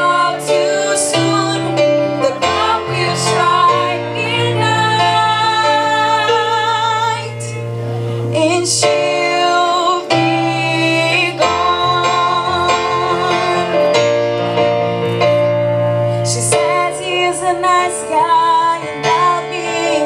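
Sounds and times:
keyboard chords: 0.0s - 20.0s.

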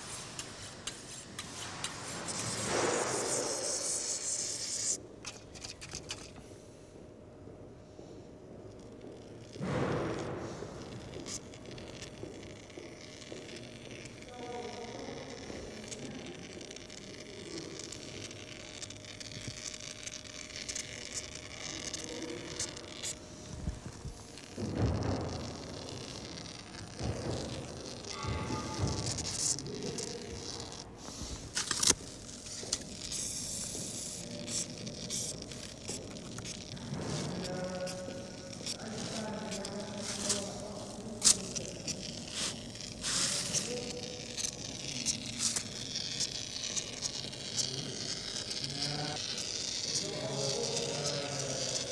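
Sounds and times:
foam gun crackling and sputtering: 0.0s - 6.6s, 8.4s - 51.9s.

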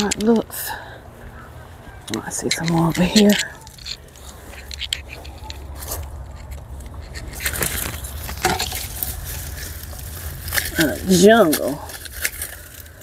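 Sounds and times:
dry plant stems rustling: 0.0s - 13.0s.

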